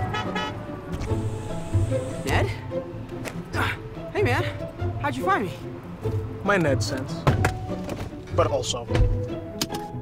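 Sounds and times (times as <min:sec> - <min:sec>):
car horn toots: 0:00.0 - 0:00.6
background music: 0:00.0 - 0:10.0.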